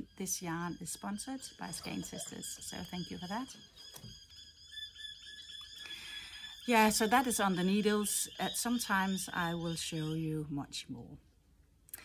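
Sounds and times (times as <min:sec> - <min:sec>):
thin high-pitched background: 0:00.0 - 0:10.7
faint birds chirping: 0:00.0 - 0:11.4.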